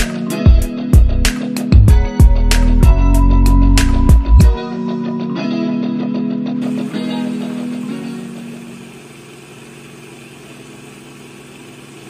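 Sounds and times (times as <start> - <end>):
guitar background music: 0.0 - 9.1
countertop blender running: 6.6 - 12.0.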